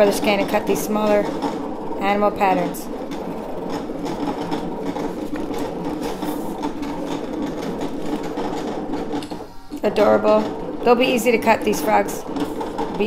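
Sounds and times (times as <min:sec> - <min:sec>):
cutting machine motors whirring: 0:00.0 - 0:13.0.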